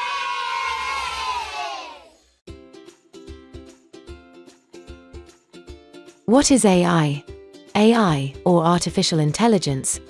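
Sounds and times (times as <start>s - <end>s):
children cheering: 0.0s - 2.2s.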